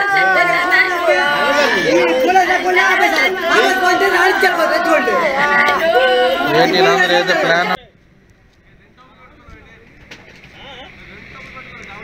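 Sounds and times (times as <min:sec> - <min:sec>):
overlapping raised voices: 0:00.0 - 0:07.8.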